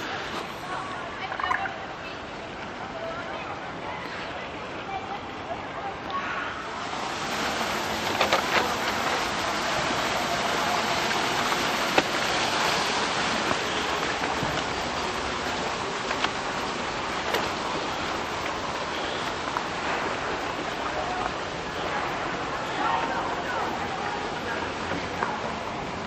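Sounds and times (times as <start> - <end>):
water rushing: 0.0 - 26.0.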